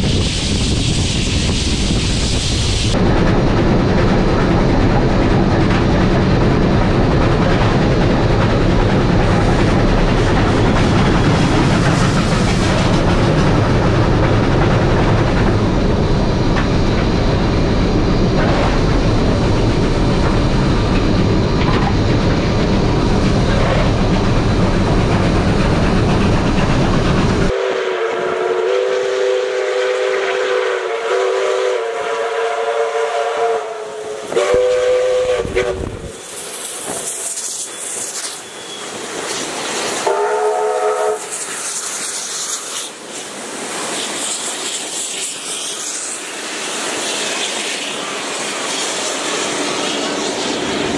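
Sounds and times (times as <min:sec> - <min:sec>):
steam locomotive rumble and clatter: 0:00.0 - 0:50.9
steam whistles sounding a chord: 0:27.5 - 0:36.4, 0:40.0 - 0:41.4.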